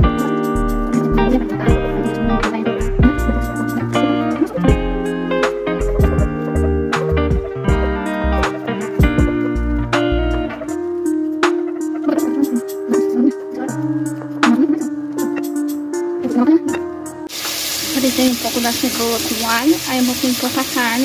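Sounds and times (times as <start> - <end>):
guitar background music: 0.0 - 21.0
meat sizzling in a pot: 17.3 - 21.0.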